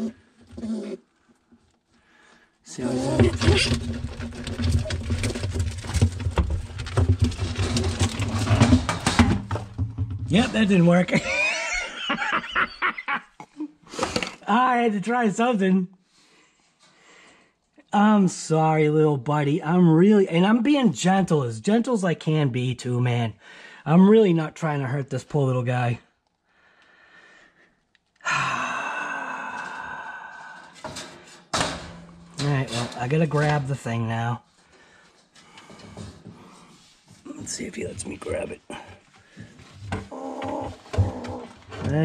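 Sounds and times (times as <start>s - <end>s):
short knocks or rustles: 3.0s - 10.8s
man laughing: 11.0s - 13.8s
man sighing: 28.2s - 30.8s.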